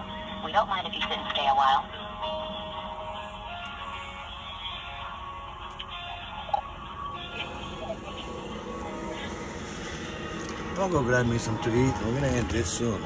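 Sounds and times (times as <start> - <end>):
low steady rumble: 0.0 - 13.0
hold music through phone speaker: 2.5 - 9.4.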